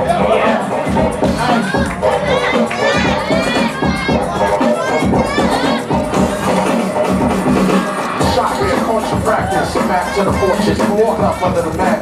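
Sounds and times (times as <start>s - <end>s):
crowd shouting and cheering: 0.0s - 12.0s
hip-hop beat: 0.0s - 12.0s
children yelling excitedly: 1.4s - 6.1s, 9.4s - 11.6s.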